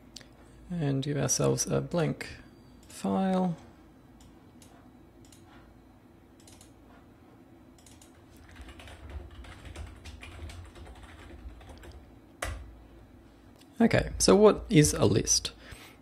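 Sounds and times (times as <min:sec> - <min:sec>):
typing on computer keyboard: 0:06.4 - 0:06.7, 0:07.8 - 0:12.6.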